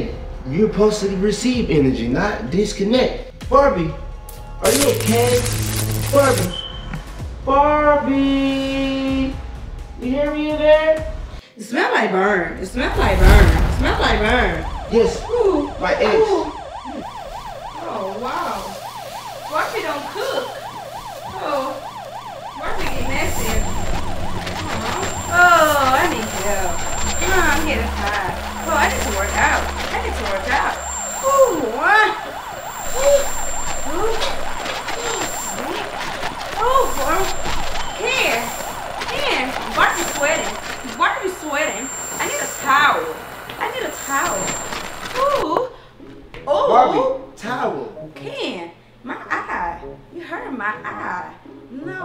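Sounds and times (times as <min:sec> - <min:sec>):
wailing siren: 0:04.0 - 0:06.8, 0:12.6 - 0:45.5.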